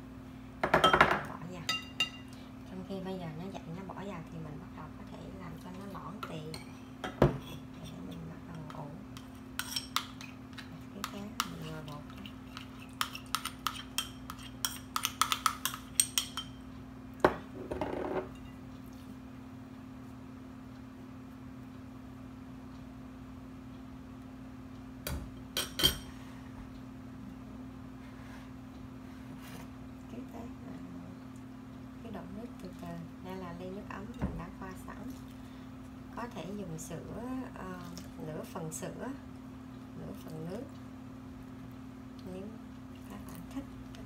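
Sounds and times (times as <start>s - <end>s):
steady low hum: 0.0s - 44.0s
spoon scraping bowl: 9.2s - 16.2s.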